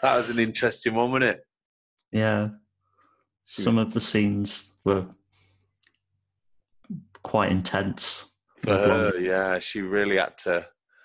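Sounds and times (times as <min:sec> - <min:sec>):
person speaking: 0:00.0 - 0:01.4, 0:02.2 - 0:02.5, 0:03.5 - 0:05.1, 0:06.9 - 0:10.6.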